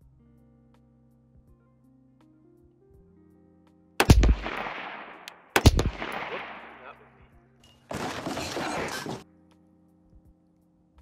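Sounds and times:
rifle shots with echo: 4.0 - 7.0.

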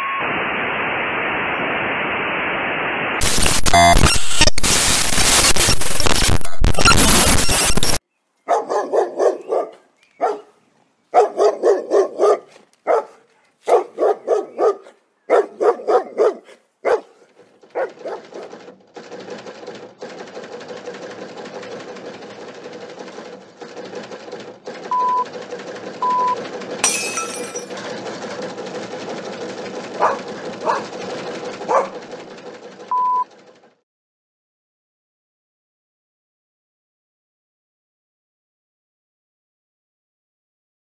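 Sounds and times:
short beeps: 0.0 - 0.4, 3.2 - 8.0
dog barking: 8.5 - 18.5, 30.0 - 30.9, 31.6 - 32.0.

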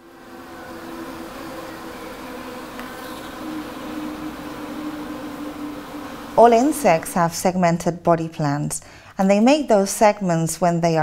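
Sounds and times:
honeybees buzzing: 0.0 - 7.9.

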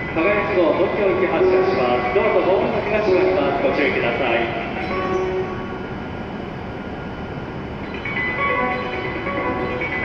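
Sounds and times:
train equipment humming: 0.0 - 10.0.

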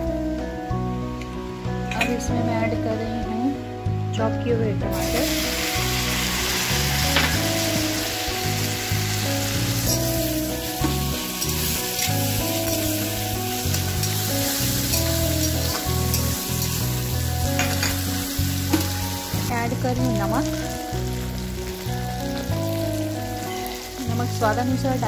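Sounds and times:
music: 0.0 - 25.0
food sizzling in pan: 4.9 - 25.0.

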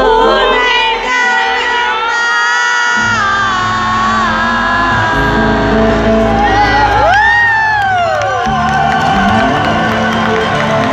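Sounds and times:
bass guitar: 3.0 - 10.9
live band music: 3.0 - 10.9.

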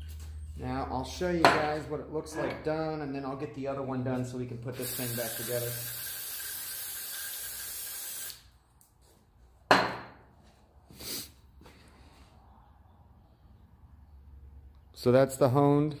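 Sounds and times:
aerosol can spraying: 4.8 - 8.5.

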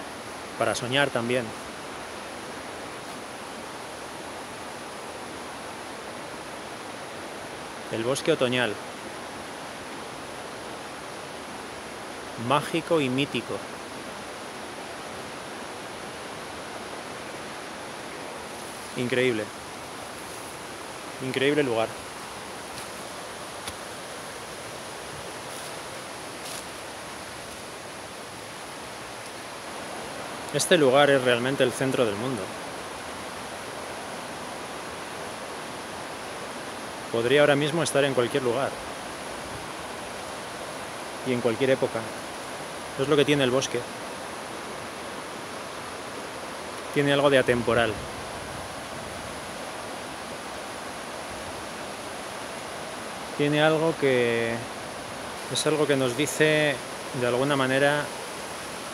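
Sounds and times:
steady rushing noise: 0.0 - 34.1.

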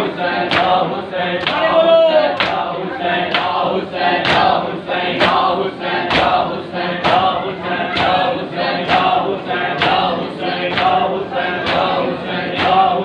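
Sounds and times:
men chanting a lament: 0.0 - 13.0.

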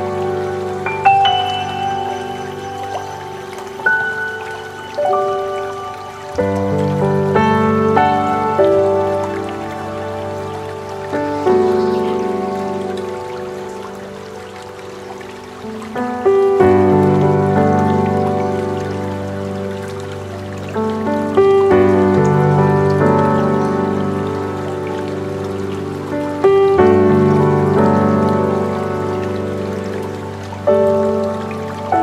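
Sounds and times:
soft ambient piano: 0.0 - 32.0
waterfall rushing: 0.0 - 32.0.

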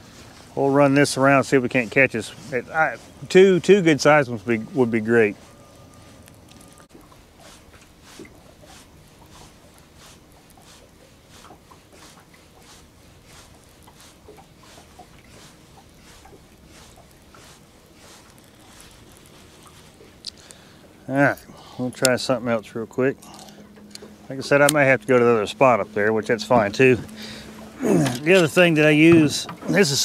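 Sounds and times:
low steady background: 0.0 - 30.0
fishing reel ticking: 11.4 - 20.6.

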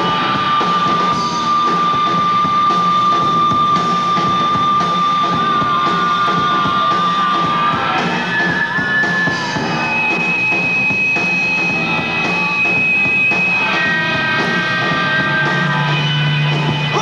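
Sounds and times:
rock band playing live: 0.0 - 17.0.

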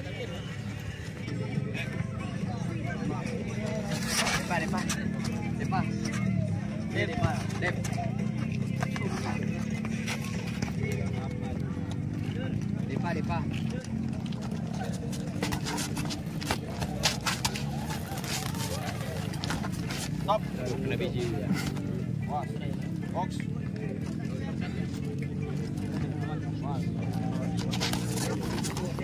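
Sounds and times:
spectators' voices: 0.0 - 29.0.

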